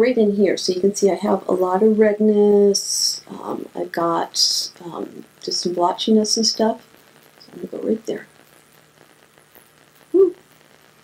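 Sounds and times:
woman humming: 10.2 - 10.4.

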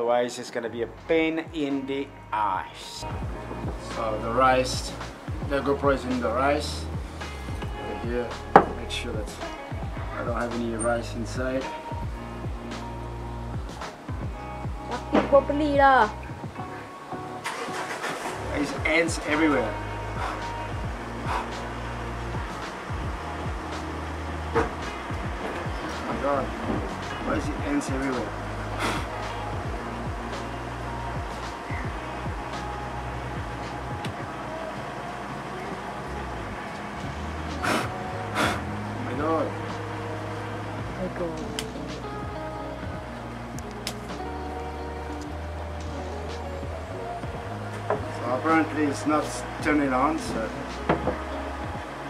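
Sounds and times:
background music: 0.0 - 52.0
voiced hum: 0.7 - 52.0
man blowing puffs of breath: 20.0 - 21.8, 28.6 - 29.4, 37.6 - 38.8.

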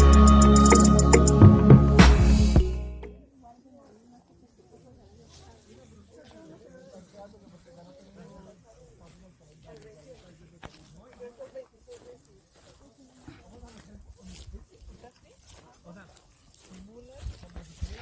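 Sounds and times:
people talking faintly: 3.2 - 18.0
footsteps on dirt trail: 4.7 - 18.0.

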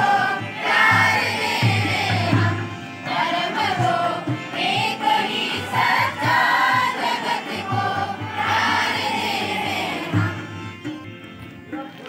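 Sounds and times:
group singing in unison: 0.0 - 10.7.

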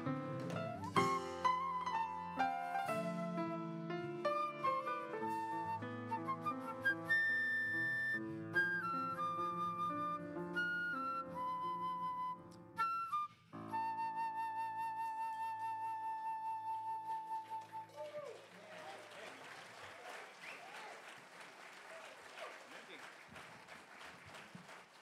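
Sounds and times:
jazz quartet playing: 0.0 - 12.2
flute note with vibrato: 1.0 - 18.0.

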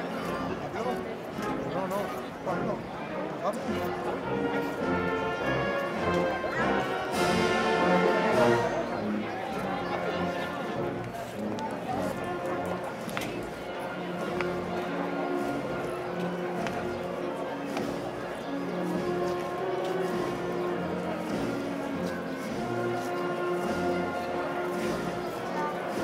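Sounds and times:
wind band playing slow march: 0.0 - 26.0.

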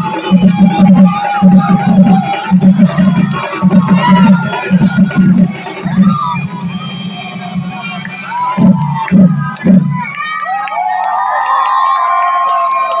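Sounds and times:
heavy drum strokes: 0.0 - 7.6
audience cheering and shouting: 0.0 - 13.0.

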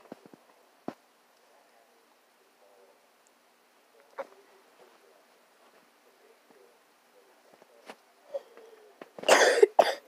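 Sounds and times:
woman coughing: 9.3 - 10.0.

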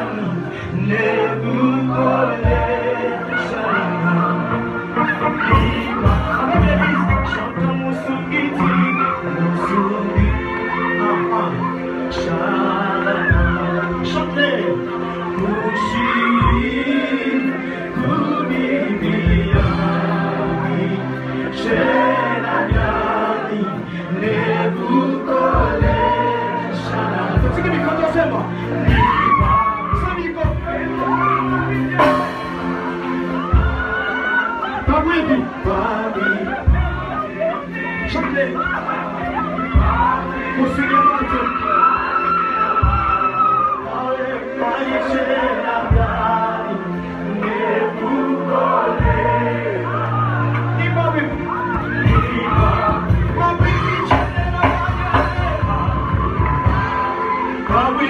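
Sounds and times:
band playing: 0.0 - 58.0
group singing gospel: 0.0 - 58.0.

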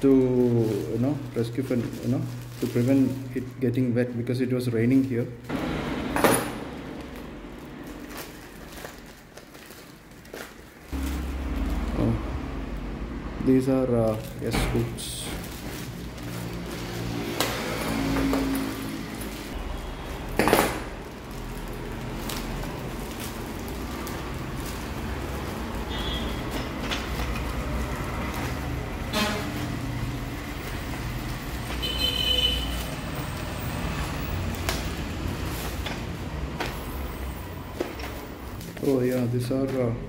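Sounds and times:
sharp plastic crackle: 0.0 - 3.8, 6.4 - 12.8, 14.0 - 40.0
plastic bags rustling and crinkling: 0.0 - 5.7, 6.4 - 12.8, 13.5 - 40.0.

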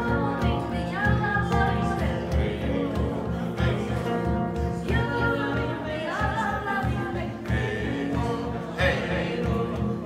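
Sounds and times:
person singing into microphone: 0.0 - 10.0
strummed acoustic guitar: 0.0 - 10.0.

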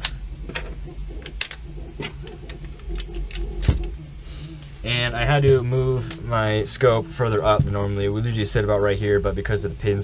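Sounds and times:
plastic parts clicking and knocking: 0.0 - 4.0.

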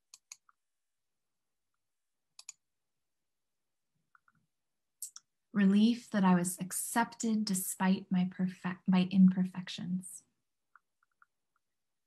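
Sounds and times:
computer mouse clicks: 0.0 - 0.6, 2.3 - 2.6, 10.7 - 11.7.

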